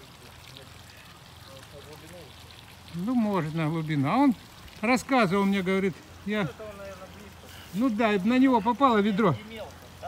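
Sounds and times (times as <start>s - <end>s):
water pattering onto pond: 0.0s - 10.0s.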